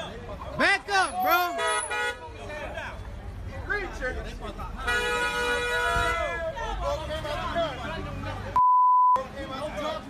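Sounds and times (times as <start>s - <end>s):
high censor beep: 8.6s - 9.2s
people talking: 9.2s - 10.0s.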